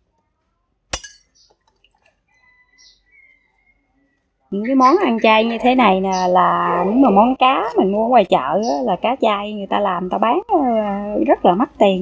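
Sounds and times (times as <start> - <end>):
metal spoon clinking a dish: 1.0 - 1.4.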